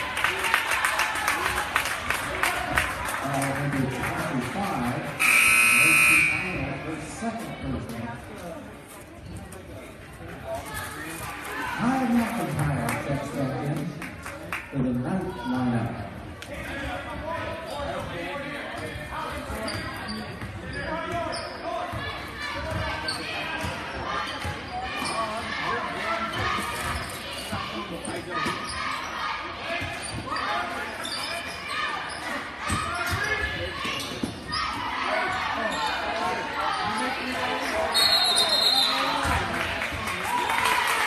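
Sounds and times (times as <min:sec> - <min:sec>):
crowd chatter and shouts: 0:00.0 - 0:41.0.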